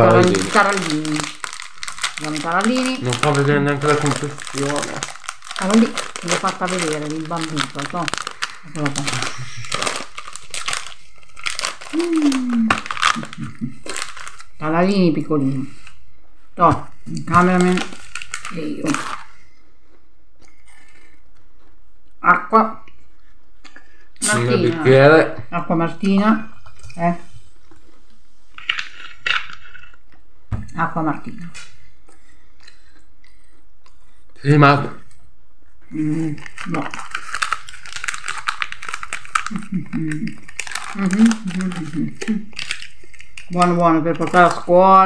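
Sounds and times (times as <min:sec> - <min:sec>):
murmured vocal sounds: 0:00.0 - 0:01.3
plastic wrapper crinkling: 0:00.0 - 0:14.6, 0:17.2 - 0:19.4, 0:28.5 - 0:30.1, 0:36.1 - 0:45.0.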